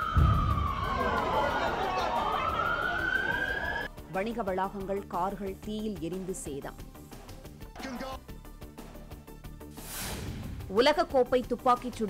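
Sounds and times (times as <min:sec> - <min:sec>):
emergency vehicle siren wailing: 0:00.0 - 0:03.9.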